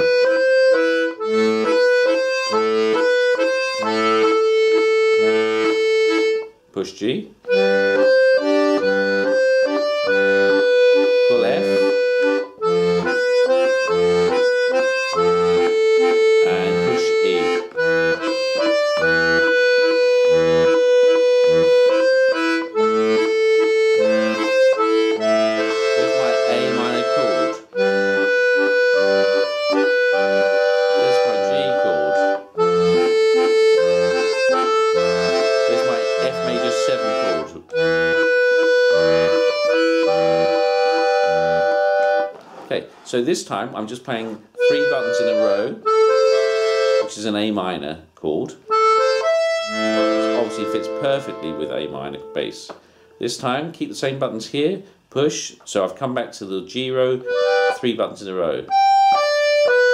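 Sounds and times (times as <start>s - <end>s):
button accordion playing a waltz: 0.0s - 6.7s, 7.4s - 43.1s, 44.1s - 47.7s, 48.6s - 53.5s, 57.1s - 59.9s.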